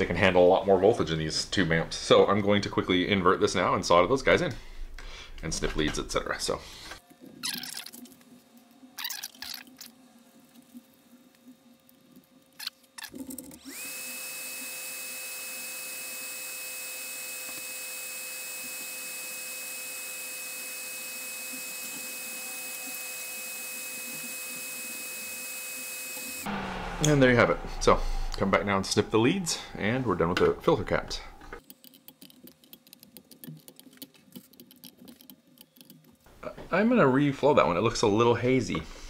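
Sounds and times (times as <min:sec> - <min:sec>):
small motor whining: 0:13.6 - 0:26.4.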